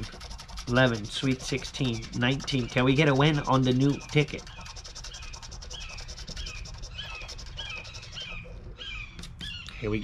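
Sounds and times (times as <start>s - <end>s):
scratching lottery ticket: 0.0s - 8.9s
bird chirping: 0.5s - 10.0s.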